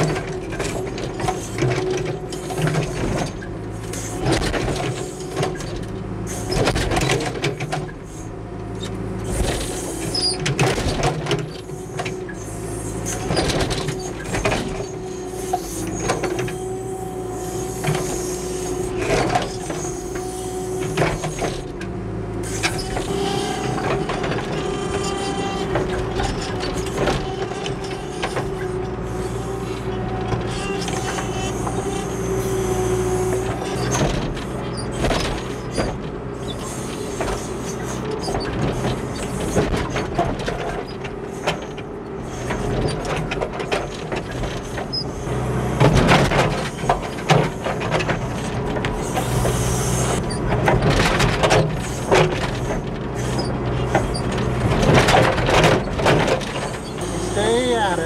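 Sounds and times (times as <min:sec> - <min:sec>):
diesel engine running under load: 0:00.0 - 0:58.0.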